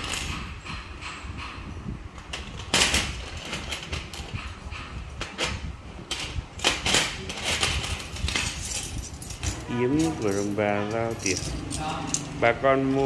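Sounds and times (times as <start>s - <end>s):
metal bangles clinking: 6.6s - 12.4s.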